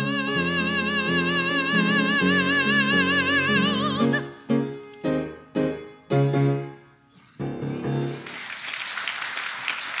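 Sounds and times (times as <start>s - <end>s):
piano chord: 4.0s - 8.3s
congregation applauding: 8.1s - 10.0s.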